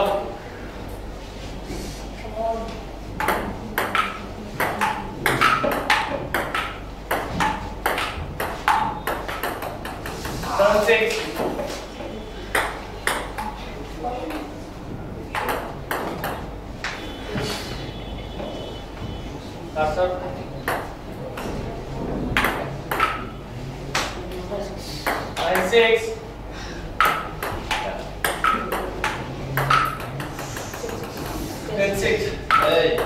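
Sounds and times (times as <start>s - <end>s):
ball bouncing on table: 3.2s - 10.5s, 12.5s - 13.6s, 15.3s - 17.0s, 22.3s - 23.3s, 27.0s - 31.4s, 32.5s - 33.0s
table tennis ball on paddles: 3.2s - 11.8s, 12.5s - 13.6s, 15.3s - 17.0s, 20.6s - 21.6s, 22.3s - 23.3s, 23.9s - 25.9s, 27.0s - 31.4s, 32.4s - 33.0s.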